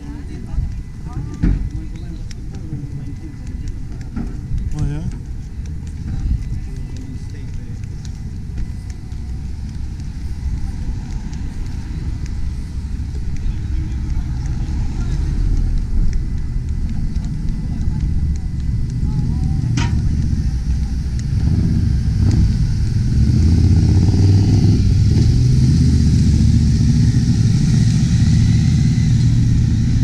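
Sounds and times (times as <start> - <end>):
people talking: 0.0 - 22.8
car traffic rumble: 0.0 - 30.0
wind buffeting microphone: 0.0 - 30.0.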